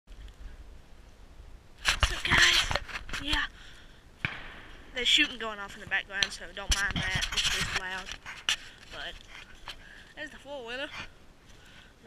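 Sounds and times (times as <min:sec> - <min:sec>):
low rumble: 0:04.1 - 0:06.0
camera handling knocks and rubbing: 0:06.6 - 0:09.8.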